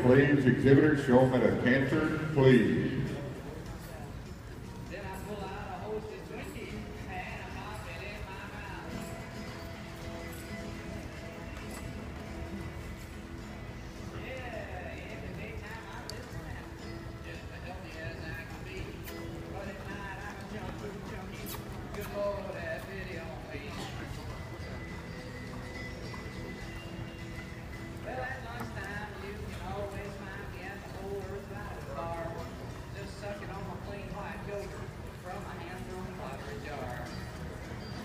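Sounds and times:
indoor arena din: 0.0s - 38.0s
horse hoofbeats on dirt: 3.2s - 38.0s.

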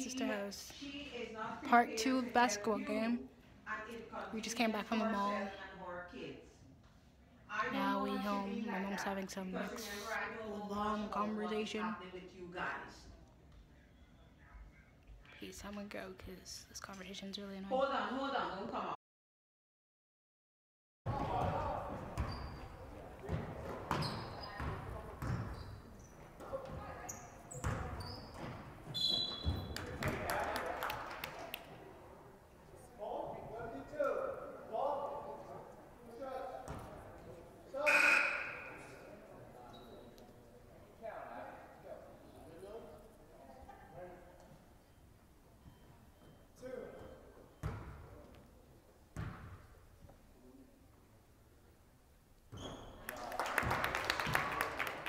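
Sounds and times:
sneakers squeaking: 21.2s - 30.2s, 36.6s - 40.5s, 44.5s - 48.5s, 49.2s - 49.8s, 52.5s - 53.1s
basketball bouncing on hardwood floor: 23.3s - 25.6s.

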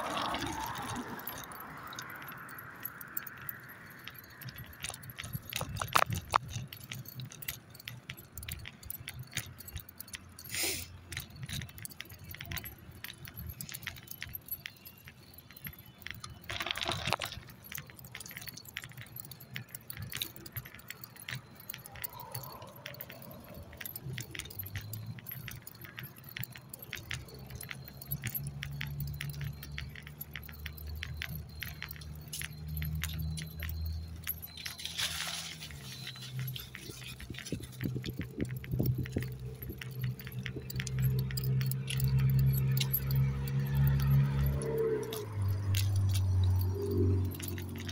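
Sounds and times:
road traffic hum: 0.0s - 47.9s
small metal pieces jingling: 0.0s - 47.9s.

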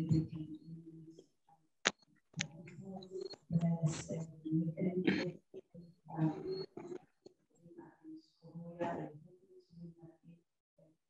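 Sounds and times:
person speaking: 2.4s - 5.4s.

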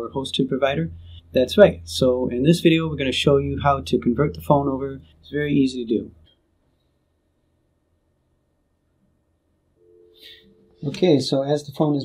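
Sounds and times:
steady two-note tone: 0.0s - 6.0s
faint low hum: 0.0s - 12.0s.

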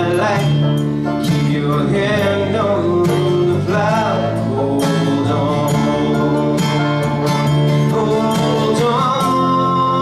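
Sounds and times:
guitars strumming and picking: 0.0s - 10.0s
man singing long notes: 1.5s - 10.0s.

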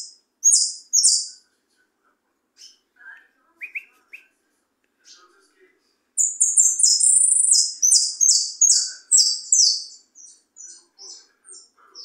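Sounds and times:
finch singing: 0.0s - 1.4s, 6.2s - 12.0s.

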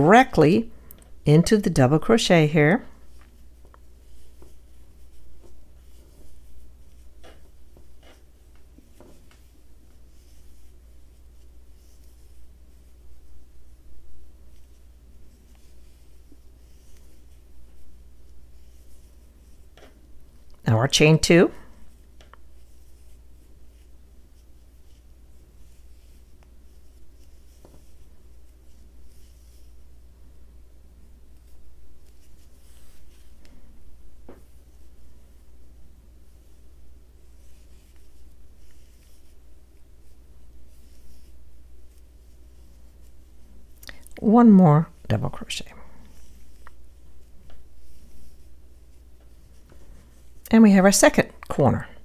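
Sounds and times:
yarn rustling on crochet hook: 0.0s - 51.9s
steady low hum: 0.0s - 52.0s.

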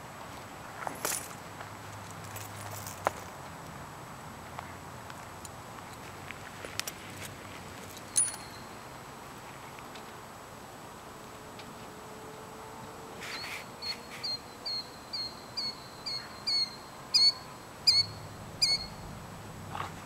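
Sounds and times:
bird sharp high calls: 13.2s - 19.1s.

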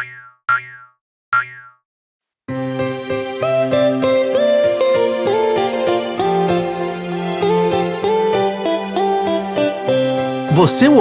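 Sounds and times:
cartoon boing: 0.0s - 1.8s.

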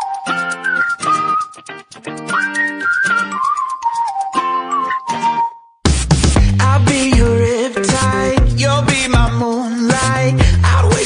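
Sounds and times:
pop music with whistled tune: 0.0s - 11.0s.

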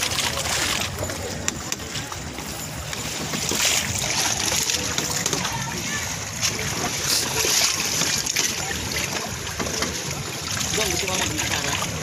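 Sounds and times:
swimmers splashing in water: 0.0s - 12.0s.

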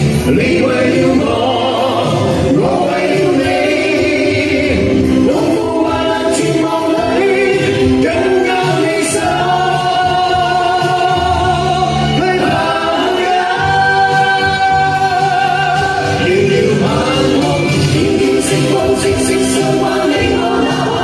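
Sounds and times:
group singing through pa: 0.0s - 21.0s.

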